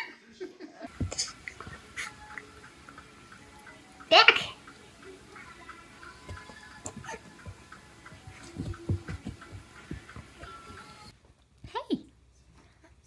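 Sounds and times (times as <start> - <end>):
soft low thumps: 0.9 - 3.0, 4.7 - 11.1.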